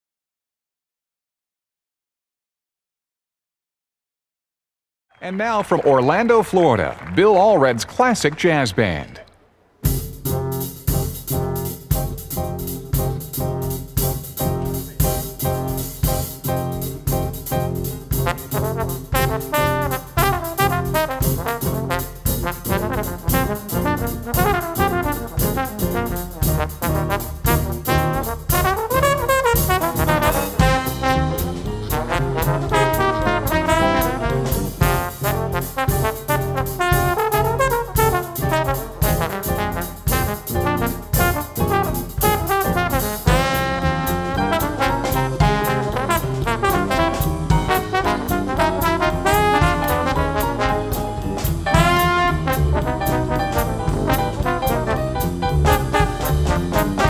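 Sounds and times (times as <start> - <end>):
small jazz band playing: 9.8 - 57.0
trombones playing melody: 9.9 - 57.0.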